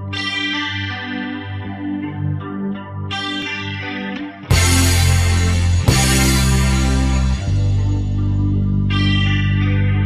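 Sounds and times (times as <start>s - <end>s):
electric guitar arpeggio: 0.0s - 10.0s
sustained bass: 4.5s - 10.0s.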